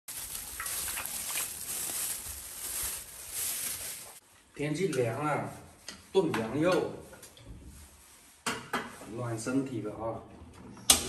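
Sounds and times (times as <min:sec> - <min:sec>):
plastic bag crinkling: 0:00.1 - 0:04.2.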